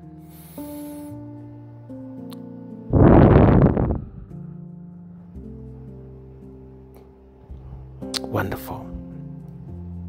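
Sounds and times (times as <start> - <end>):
soft music of held tones: 0.0 - 10.0
breath into microphone: 0.2 - 1.2.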